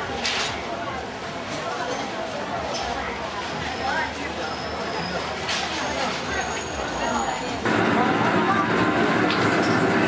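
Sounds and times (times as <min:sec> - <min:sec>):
shop ambience: 0:00.0 - 0:10.0
kitchen stove roaring: 0:07.6 - 0:10.0.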